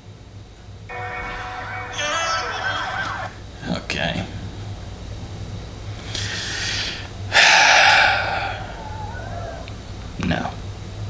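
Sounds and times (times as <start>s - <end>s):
man exhaling heavily: 6.2s - 9.6s.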